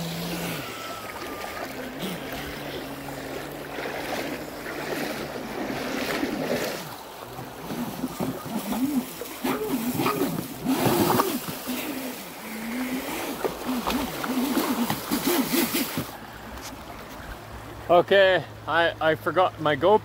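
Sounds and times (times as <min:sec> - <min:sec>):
toy jetboat motor whining: 0:00.0 - 0:05.4, 0:07.5 - 0:16.2
water spraying: 0:00.0 - 0:16.7
rushing creek water: 0:00.0 - 0:20.0.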